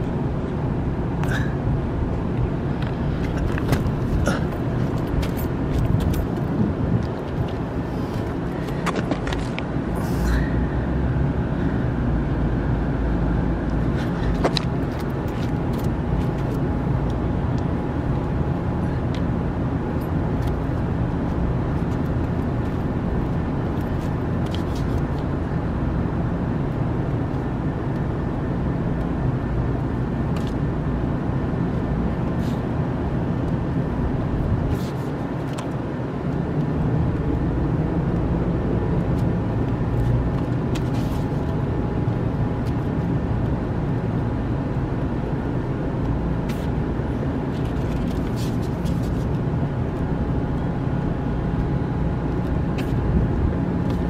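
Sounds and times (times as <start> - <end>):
faint steady hum: 0.0 - 54.0
low outdoor rumble: 0.0 - 54.0.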